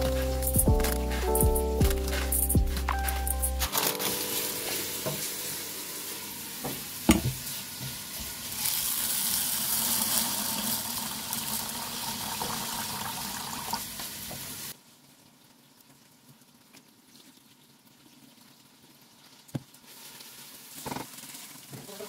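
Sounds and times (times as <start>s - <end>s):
tap water running into metal bowl: 6.6s - 14.4s.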